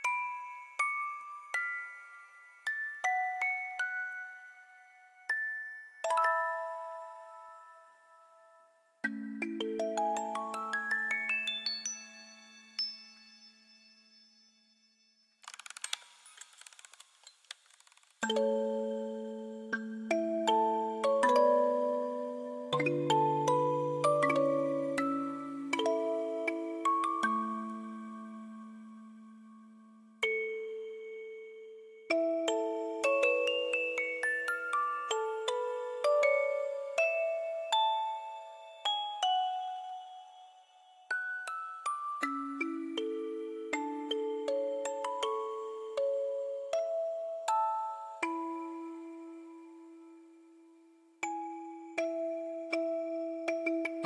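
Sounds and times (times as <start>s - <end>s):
music box notes ringing: 9.1s - 15.4s, 18.2s - 29.4s, 30.2s - 48.9s
music box mechanism clicking: 15.4s - 17.9s.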